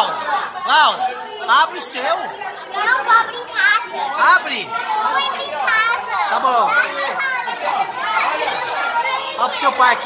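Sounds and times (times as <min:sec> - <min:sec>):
children chattering: 0:00.0 - 0:10.0.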